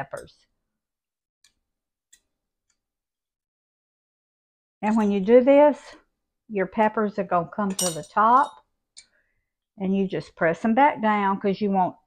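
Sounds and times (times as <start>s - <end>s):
knife tapping glass jar: 7.7s - 8.6s.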